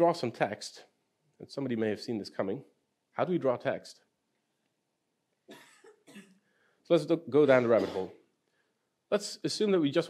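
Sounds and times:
man coughing quietly: 7.4 - 8.2.

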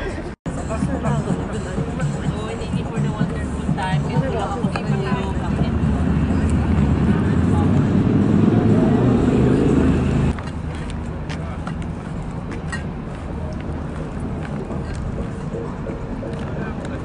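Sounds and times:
voices: 0.0 - 10.4
low rumble of road vehicles: 0.0 - 17.0.

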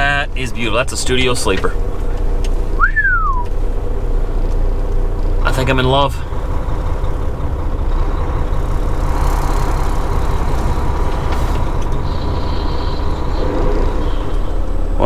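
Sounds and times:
diesel truck engine rumbling: 0.0 - 15.0.

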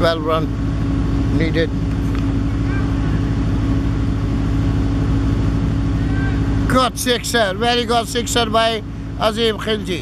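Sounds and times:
engine humming steadily: 0.0 - 10.0.

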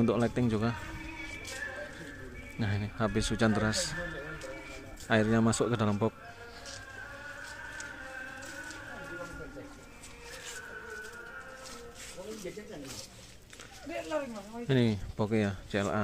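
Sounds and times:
faint voices talking: 0.0 - 16.0.

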